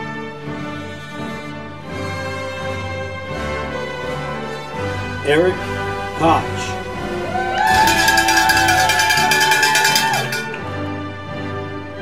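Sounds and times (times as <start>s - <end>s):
background music: 0.0s - 12.0s
high-pitched held call: 7.7s - 10.6s
rapid even clanging: 7.7s - 10.6s.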